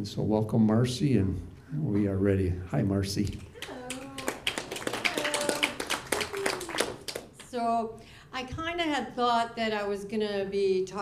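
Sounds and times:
audience clapping: 3.6 - 7.6.

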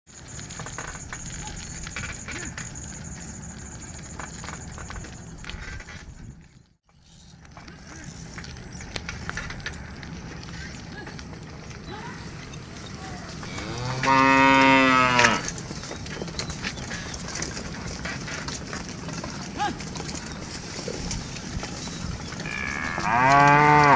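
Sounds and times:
cow mooing: 13.4 - 15.5, 22.4 - 23.9.

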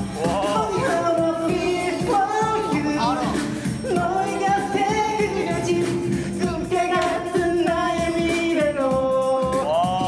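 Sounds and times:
backing track with steady beat: 0.0 - 10.0
man singing into microphone: 0.0 - 10.0.

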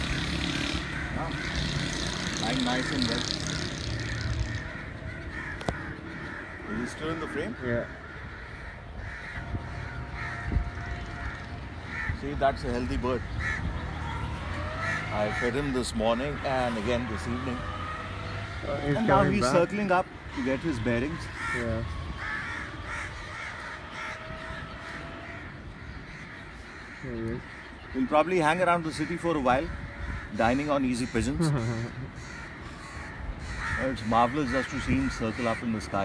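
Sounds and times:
crows cawing: 0.0 - 36.0.

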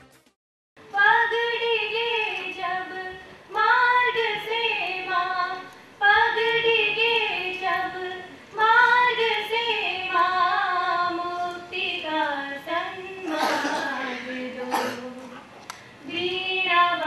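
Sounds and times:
two women singing: 0.9 - 17.0.

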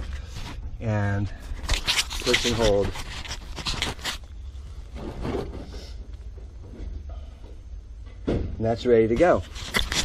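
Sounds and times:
pipe scraping and rustling: 0.0 - 7.3, 9.1 - 10.0.

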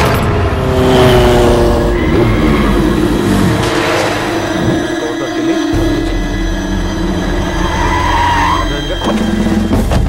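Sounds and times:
low mechanical rumbling drone: 1.4 - 9.9.

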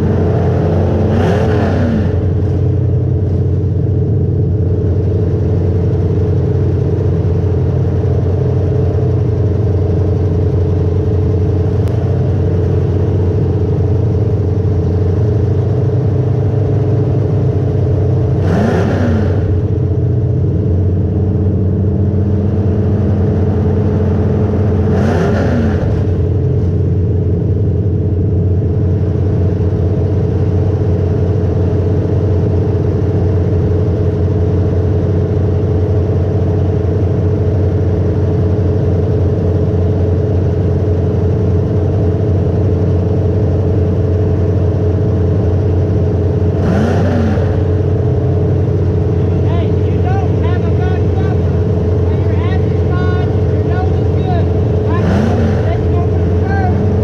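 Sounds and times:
car engine running: 0.0 - 57.0.

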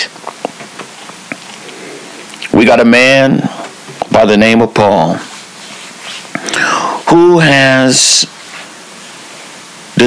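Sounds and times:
low steady hiss: 0.0 - 10.0
breathy intake of breath: 6.4 - 7.0
man speaking: 6.9 - 8.4.

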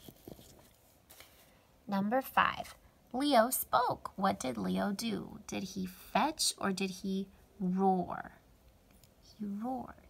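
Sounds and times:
paper rustling: 0.0 - 1.6.

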